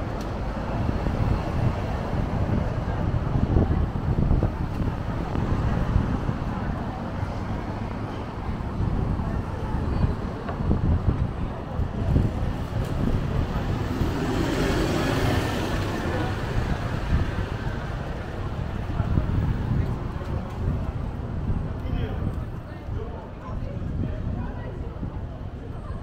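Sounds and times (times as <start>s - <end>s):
bus passing close by: 0.0s - 21.8s
low traffic rumble: 0.0s - 26.0s.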